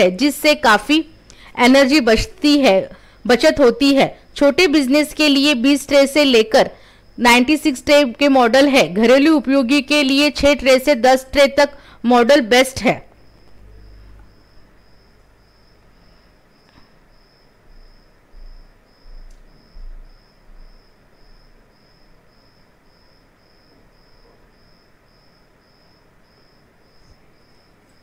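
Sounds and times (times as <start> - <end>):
faint room noise: 0.0 - 28.0.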